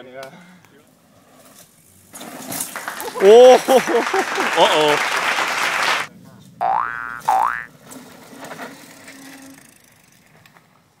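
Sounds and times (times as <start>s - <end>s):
cartoon boing sound effect: 6.6s - 7.7s.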